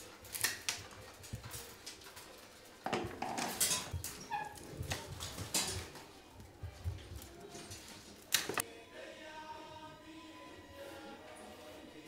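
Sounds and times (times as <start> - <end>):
cane strips clicking and rustling: 0.0 - 8.6.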